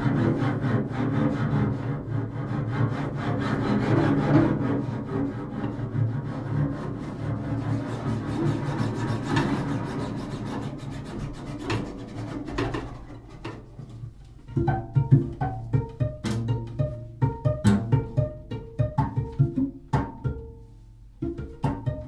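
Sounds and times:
bowed double bass: 0.0 - 22.0.

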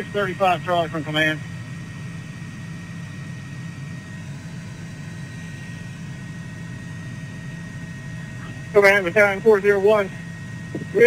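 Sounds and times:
low engine-like drone: 0.0 - 11.0
radio transmissions: 8.2 - 11.0.

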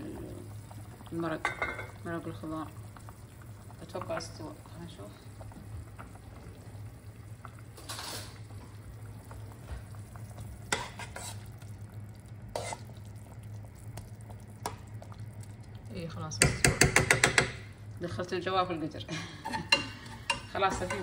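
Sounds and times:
steady low hum: 0.0 - 21.0
ladle stirring in metal pot: 10.4 - 11.7, 12.4 - 13.1, 19.4 - 21.0.

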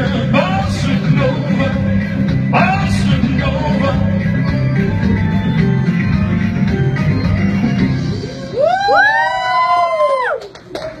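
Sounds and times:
backing music: 0.0 - 9.6
audience whooping cries: 8.2 - 10.7.

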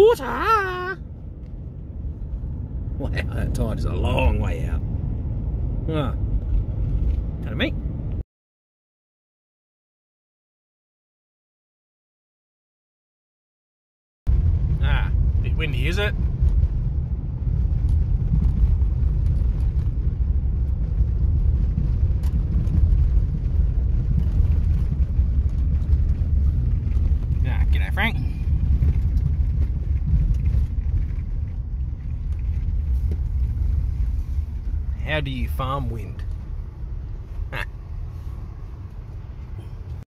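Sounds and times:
person speaking: 0.0 - 1.0, 35.0 - 36.3
car driving on gravel: 0.0 - 8.2, 14.3 - 40.0.

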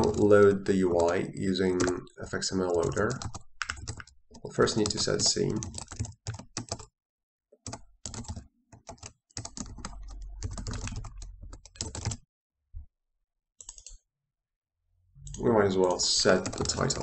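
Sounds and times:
typing on computer keyboard: 0.0 - 6.9, 7.6 - 12.2, 13.6 - 14.0, 15.2 - 17.0.

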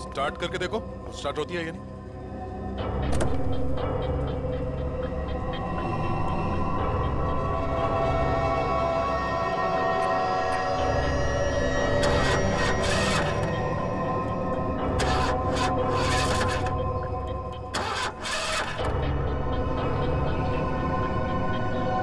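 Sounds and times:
suspenseful background music: 0.0 - 22.0
car engine cranking: 11.9 - 13.8, 14.8 - 19.2.

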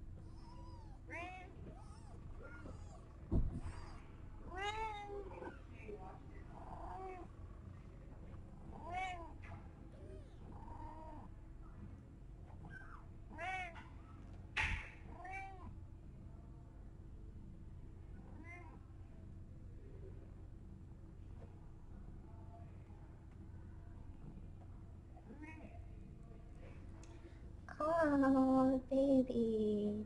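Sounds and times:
kittens mewing: 0.2 - 5.7
thump: 3.3 - 3.8.

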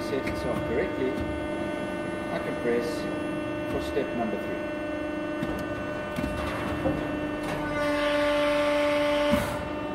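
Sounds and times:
hydraulic pump hum: 0.0 - 9.9
machine whirr: 0.0 - 9.9.

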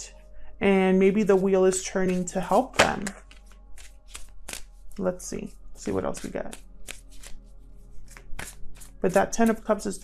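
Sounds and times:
cards being shuffled: 1.3 - 9.9.

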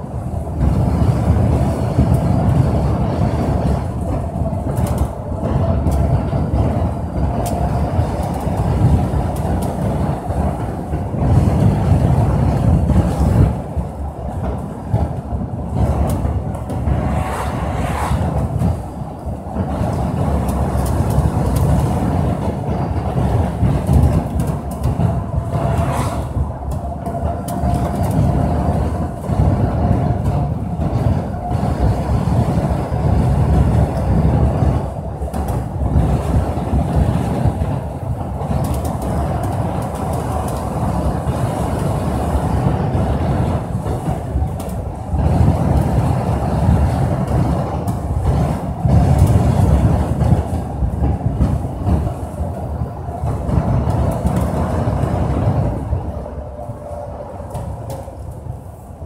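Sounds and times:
vehicle road rumble: 0.0 - 59.0.

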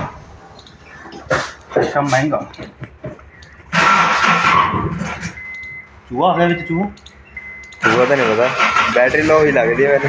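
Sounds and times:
car starter cranking engine: 3.7 - 5.4, 7.7 - 9.9.

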